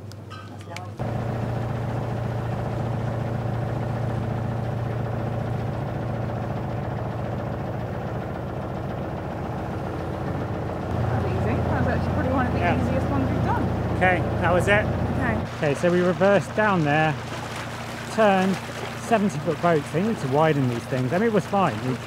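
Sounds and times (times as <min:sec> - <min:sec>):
boat engine humming: 0:00.0 - 0:22.0
people talking: 0:00.4 - 0:01.0, 0:11.0 - 0:17.2, 0:18.0 - 0:22.0.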